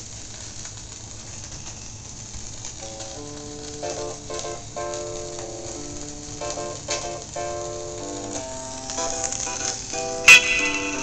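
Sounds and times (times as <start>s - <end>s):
vinyl record crackle and hiss: 0.0s - 11.0s
music with sustained chords: 2.8s - 11.0s.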